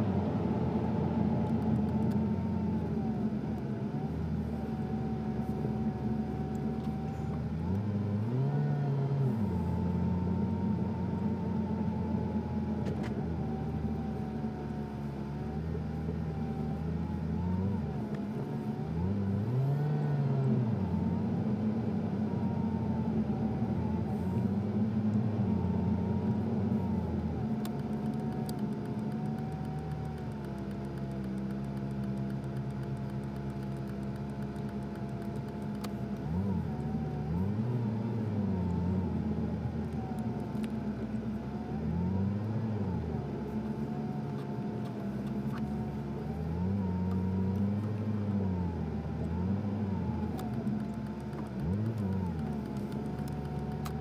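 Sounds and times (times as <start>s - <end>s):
car engine rising and falling: 0.0s - 54.0s.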